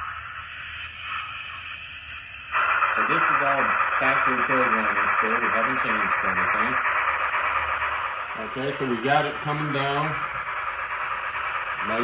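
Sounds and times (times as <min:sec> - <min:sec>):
model locomotive steam hiss: 0:00.0 - 0:12.0.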